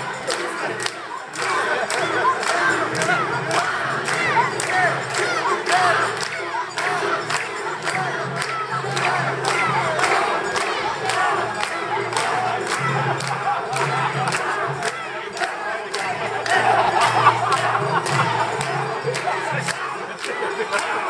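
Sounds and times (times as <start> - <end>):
crowd shouting rhythmic chant: 0.0 - 21.0.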